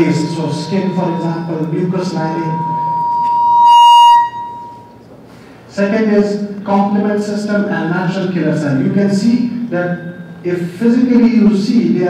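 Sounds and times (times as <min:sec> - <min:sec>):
microphone feedback whistle: 0:00.0 - 0:05.1, 0:09.4 - 0:10.4.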